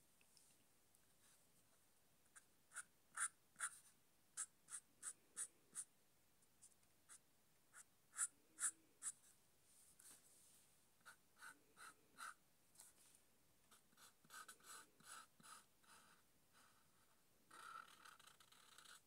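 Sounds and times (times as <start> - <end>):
marker pen colouring on paper: 2.3 - 5.9, 7.1 - 9.2, 11.0 - 13.0, 13.7 - 19.0.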